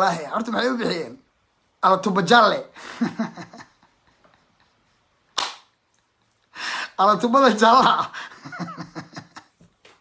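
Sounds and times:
hand smack: 0:05.4 - 0:05.7.

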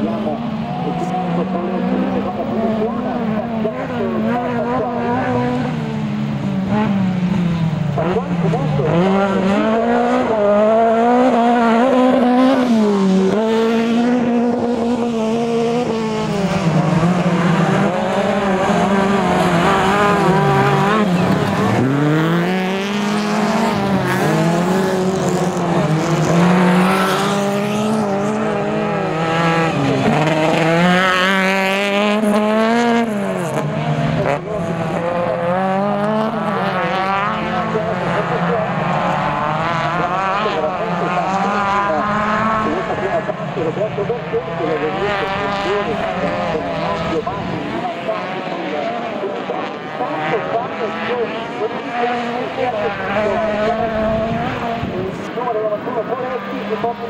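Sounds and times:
race car engines revving: 0:00.0 - 0:57.0.

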